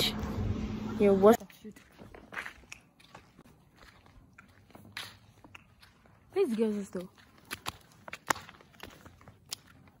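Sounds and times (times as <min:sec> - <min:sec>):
footsteps crunching on sandy dirt: 0:01.6 - 0:10.0.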